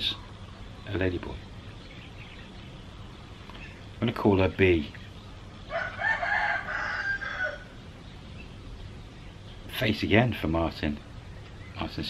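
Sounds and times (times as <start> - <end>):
rooster crowing: 5.7 - 7.8.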